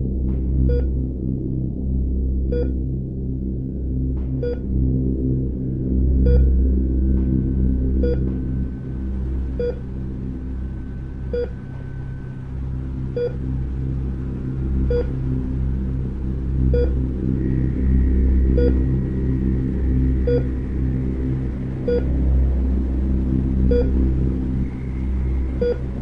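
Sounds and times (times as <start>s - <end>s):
low rumbling drone: 0.0s - 26.0s
heart monitor beeps: 0.7s - 0.9s, 2.5s - 2.7s, 6.2s - 6.5s, 8.0s - 8.3s, 9.6s - 9.8s, 11.3s - 11.6s, 13.2s - 13.4s, 14.9s - 15.1s, 16.7s - 17.0s, 20.3s - 20.5s, 23.7s - 24.0s.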